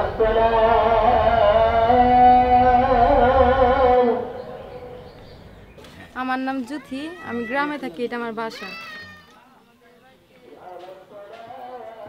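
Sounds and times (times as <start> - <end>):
girl speaking: 6.4 - 9.4.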